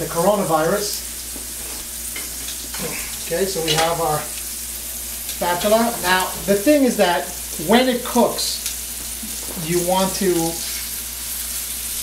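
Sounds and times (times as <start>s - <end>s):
chicken sizzling in a pan: 0.0s - 12.0s.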